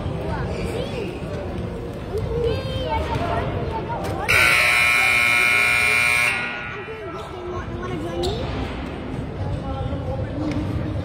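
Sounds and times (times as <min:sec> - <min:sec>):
voices chattering: 0:00.0 - 0:11.0
scoreboard buzzer blast: 0:04.3 - 0:06.9.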